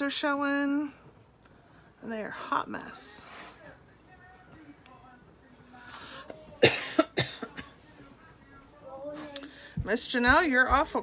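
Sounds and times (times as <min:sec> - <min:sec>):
woman coughing: 0:06.6 - 0:07.8.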